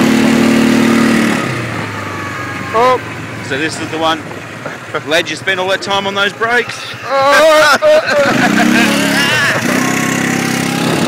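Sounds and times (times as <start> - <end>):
off-road vehicle engine revving: 0.0 - 11.0.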